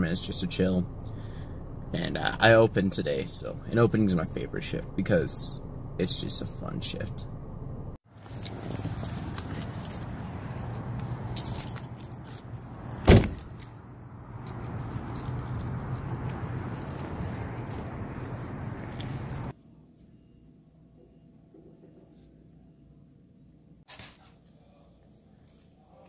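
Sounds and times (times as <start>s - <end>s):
steady outdoor noise: 0.0s - 19.5s
keys jangling: 8.3s - 13.8s
car door shutting: 13.0s - 13.5s.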